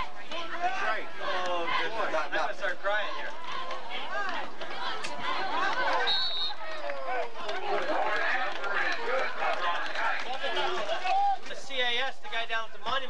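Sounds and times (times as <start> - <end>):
indistinct crowd chatter: 0.0 - 13.0.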